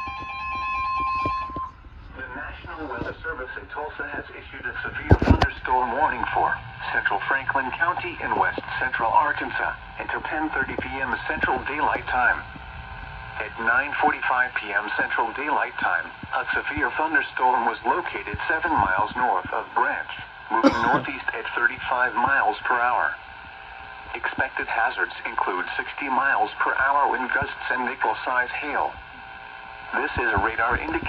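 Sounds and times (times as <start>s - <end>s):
synthesized voice from speaker: 2.1s - 12.4s, 13.4s - 23.2s.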